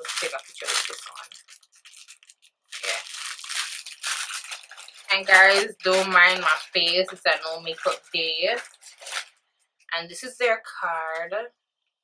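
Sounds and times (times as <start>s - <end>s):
plastic packaging crinkling: 0.0s - 9.9s.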